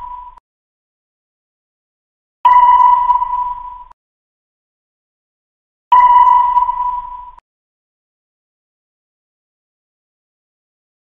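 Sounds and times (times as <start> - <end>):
long electronic beep: 0.0 - 0.4, 2.5 - 4.0, 5.9 - 7.4.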